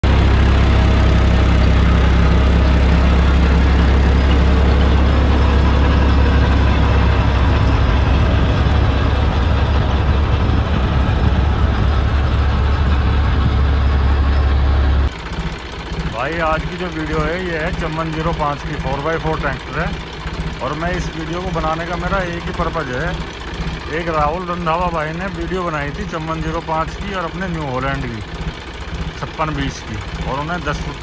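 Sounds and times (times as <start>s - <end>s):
diesel tractor engine running: 0.0s - 31.0s.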